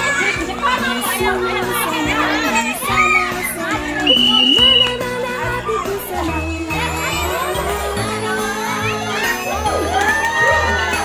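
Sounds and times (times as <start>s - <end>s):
background music: 0.0s - 11.0s
children shouting and chattering: 0.0s - 11.0s
high steady tone: 4.0s - 5.0s.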